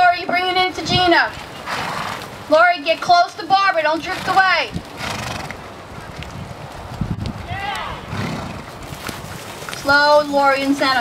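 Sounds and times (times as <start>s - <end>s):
horse hoofbeats on sand: 0.0s - 11.0s
horse whinny: 1.6s - 2.3s, 4.0s - 5.6s, 7.5s - 8.8s.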